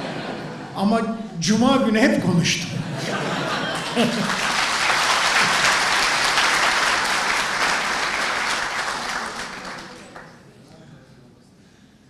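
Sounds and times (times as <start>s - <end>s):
audience applauding: 3.4s - 10.5s.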